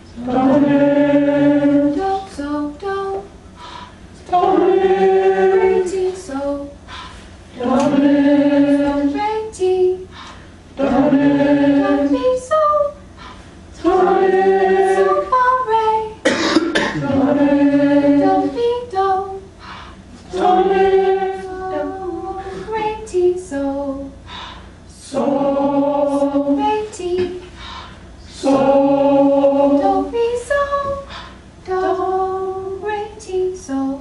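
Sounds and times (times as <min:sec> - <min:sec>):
group singing in unison: 0:00.0 - 0:34.0
person coughing: 0:16.2 - 0:17.2.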